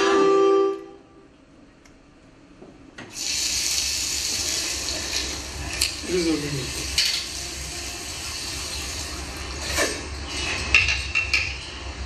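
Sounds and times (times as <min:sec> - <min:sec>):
water running from a tap: 0:03.1 - 0:09.6.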